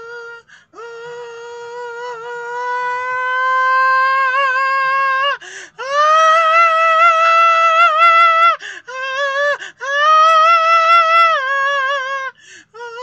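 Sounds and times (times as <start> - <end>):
gasp of breath: 0.4 - 0.8, 5.4 - 5.8, 8.6 - 8.9, 9.6 - 9.8, 12.3 - 12.8.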